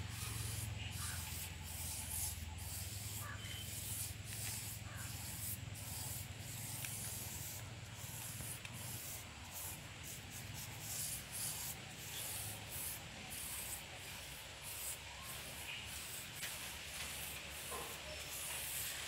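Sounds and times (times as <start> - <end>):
paintbrush scrubbing on wood: 0.1 - 19.0.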